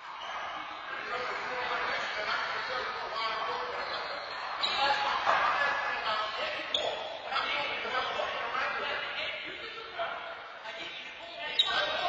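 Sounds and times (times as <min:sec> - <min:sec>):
players' voices echoing: 0:00.0 - 0:12.0.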